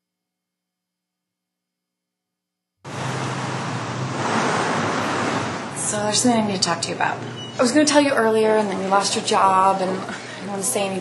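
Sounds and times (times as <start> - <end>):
passing traffic: 2.9 - 7.8.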